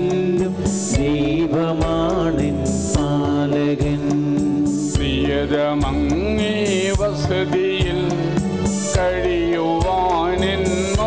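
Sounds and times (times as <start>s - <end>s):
instrumental accompaniment with beat: 0.0s - 11.0s
person singing a hymn: 0.0s - 11.0s.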